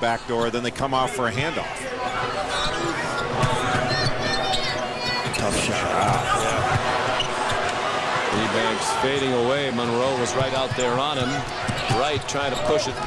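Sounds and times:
crowd din: 0.0s - 13.0s
sneakers squeaking: 2.0s - 8.3s, 10.4s - 13.0s.

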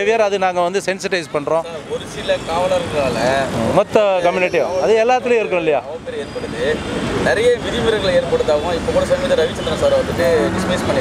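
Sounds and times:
man speaking: 0.0s - 11.0s
road traffic noise: 0.0s - 11.0s
vehicle passing close by: 9.9s - 11.0s.

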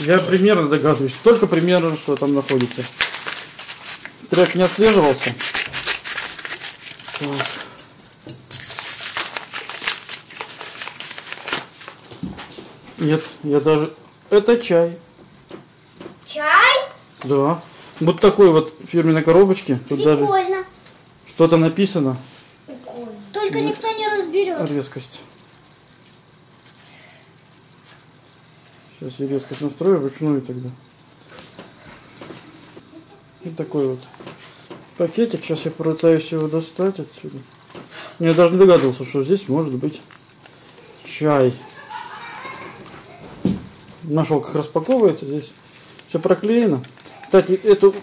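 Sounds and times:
faint steady hiss: 0.0s - 48.0s
packaging crinkling and rustling: 1.1s - 8.0s, 8.6s - 12.6s, 38.4s - 41.0s, 44.8s - 48.0s.

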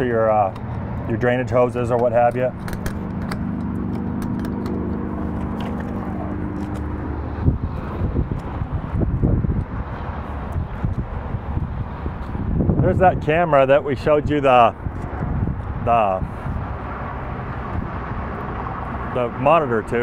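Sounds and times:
low machine hum: 0.0s - 11.9s.

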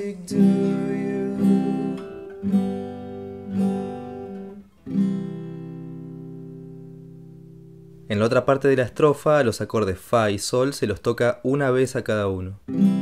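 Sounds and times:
acoustic guitar strums: 0.0s - 8.1s, 12.6s - 13.0s.

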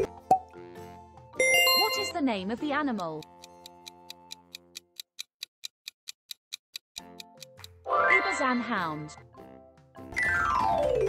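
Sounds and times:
countdown timer ticking: 1.4s - 9.0s.

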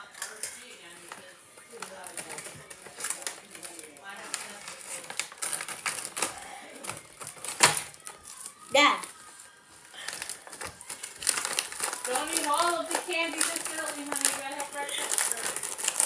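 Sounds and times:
plastic packets crinkling: 0.0s - 16.0s.

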